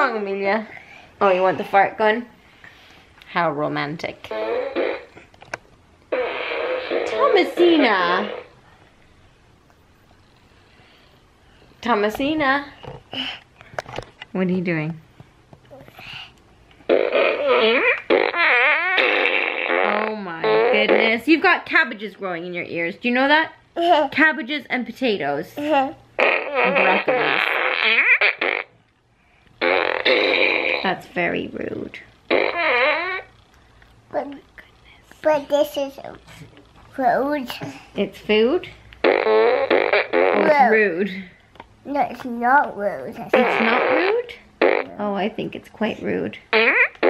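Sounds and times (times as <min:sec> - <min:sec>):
toy fart noise from speaker: 0:04.2 - 0:05.3, 0:06.1 - 0:08.6, 0:16.9 - 0:21.2, 0:26.2 - 0:28.8, 0:29.6 - 0:31.0, 0:32.3 - 0:33.4, 0:39.0 - 0:40.8, 0:43.3 - 0:45.0, 0:46.5 - 0:47.0.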